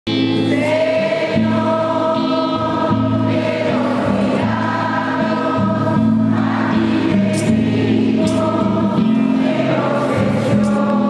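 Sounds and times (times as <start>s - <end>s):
choir singing long chords: 0.2s - 11.0s.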